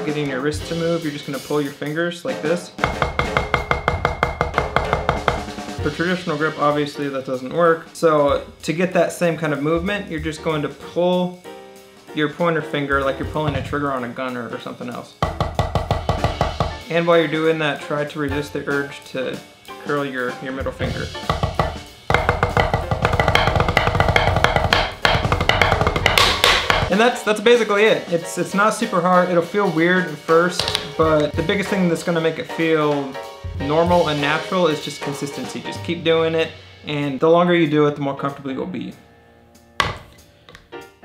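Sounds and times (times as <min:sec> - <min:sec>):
fast drumming: 0:00.0 - 0:11.1, 0:12.2 - 0:37.2
deep bass: 0:09.6 - 0:10.8, 0:12.9 - 0:14.2, 0:20.6 - 0:26.9.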